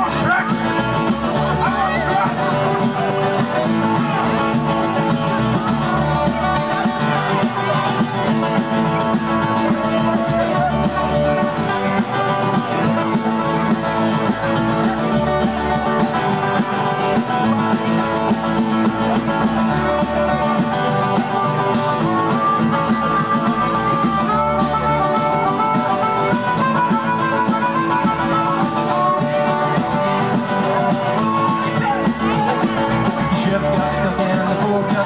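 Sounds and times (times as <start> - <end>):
drum kit: 0.0 - 35.0
strummed acoustic guitars: 0.0 - 35.0.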